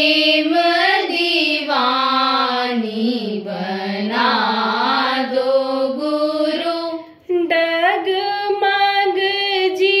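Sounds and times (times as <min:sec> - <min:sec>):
person singing a chant: 0:00.0 - 0:10.0.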